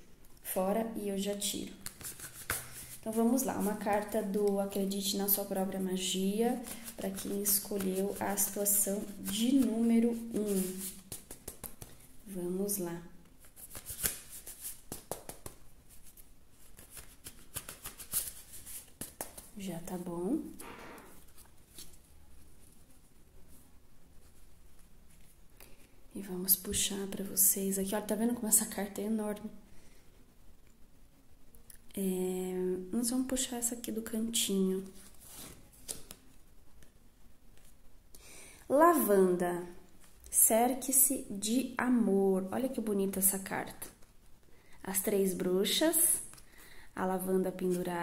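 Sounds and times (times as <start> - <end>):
cards slapping: 1.8 - 2.9, 10.4 - 12.0, 13.5 - 15.6, 16.7 - 19.5, 35.2 - 36.2
cards being shuffled: 1.8 - 3.0, 6.6 - 12.1, 13.4 - 19.6, 21.2 - 22.5, 34.8 - 37.8.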